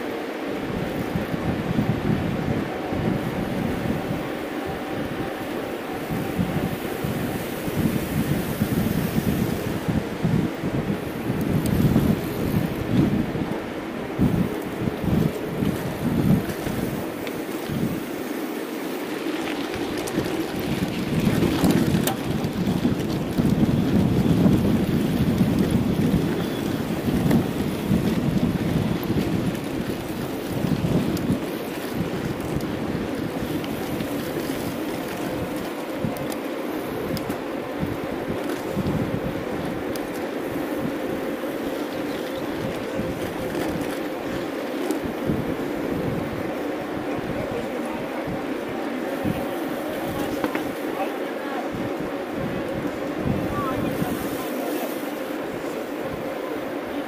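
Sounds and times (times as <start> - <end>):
bike rolling noise: 0.0 - 57.0
wind gusting over microphone: 0.0 - 57.0.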